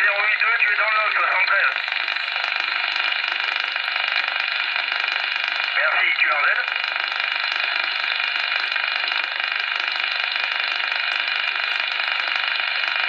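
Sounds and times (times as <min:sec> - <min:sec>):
radio band noise hiss: 0:00.0 - 0:13.0.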